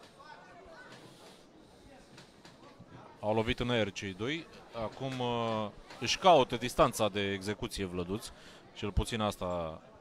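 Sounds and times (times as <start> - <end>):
low crowd murmur: 0.0 - 10.0.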